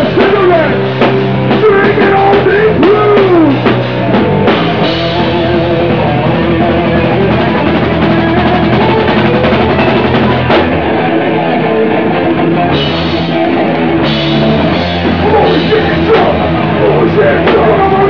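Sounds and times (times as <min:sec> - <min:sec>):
distorted electric guitar: 0:00.0 - 0:18.0
pounding drum kit: 0:00.0 - 0:18.0
punk band playing live: 0:00.0 - 0:18.0.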